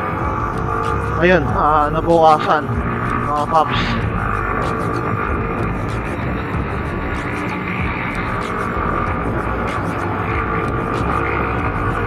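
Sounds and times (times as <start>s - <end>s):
background music: 0.0s - 12.0s
motorcycle riding noise: 0.0s - 12.0s
wind rumbling on microphone: 0.0s - 12.0s.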